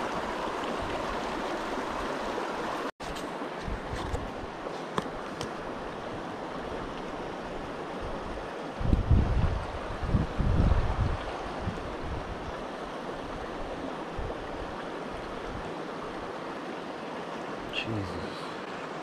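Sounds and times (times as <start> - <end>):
stream rushing: 0.0 - 19.0
wind buffeting microphone: 8.1 - 12.6.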